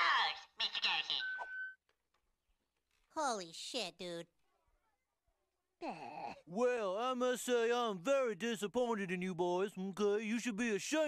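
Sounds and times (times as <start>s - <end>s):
voice: 3.2s - 4.3s, 5.8s - 11.0s.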